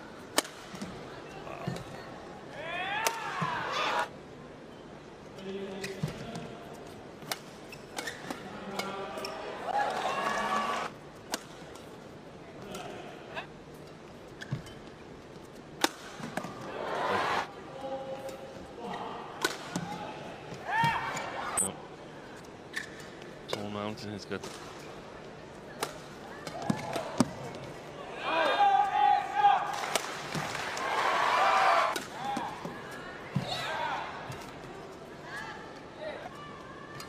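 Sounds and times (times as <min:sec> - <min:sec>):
racket striking shuttlecock: 0:00.3 - 0:00.6
shoes squeaking on court mat: 0:07.6 - 0:08.5.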